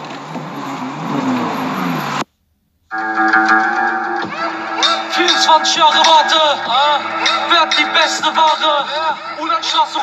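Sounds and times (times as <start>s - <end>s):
car engine and road noise: 0.0s - 10.0s
guitar music: 2.9s - 9.3s.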